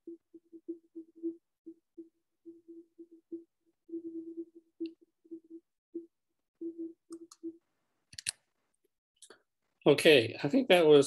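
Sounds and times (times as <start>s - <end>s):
computer mouse clicks: 8.1s - 8.4s.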